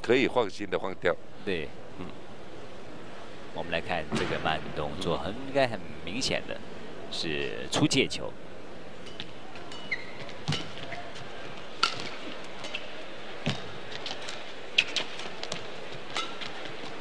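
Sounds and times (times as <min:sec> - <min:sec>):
arena hall noise: 0:00.0 - 0:17.0
racket striking shuttlecock: 0:09.1 - 0:11.0, 0:11.8 - 0:12.8
shoe squeaks on court: 0:09.8 - 0:11.1.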